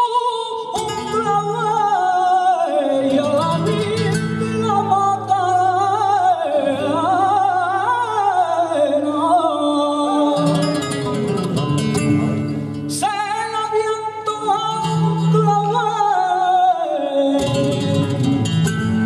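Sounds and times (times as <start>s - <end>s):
man singing into a microphone: 0.0s - 19.0s
guitar strumming: 10.4s - 15.9s, 17.4s - 19.0s.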